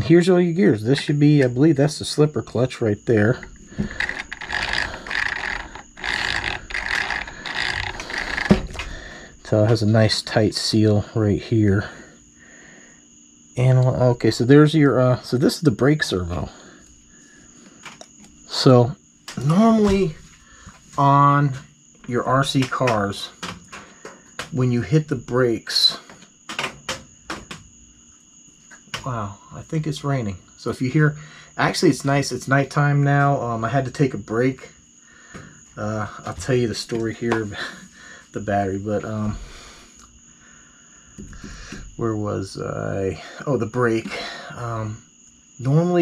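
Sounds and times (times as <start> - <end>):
crickets chirring: 0.0 - 46.0
toy motorcycle gears whirring: 3.8 - 8.8.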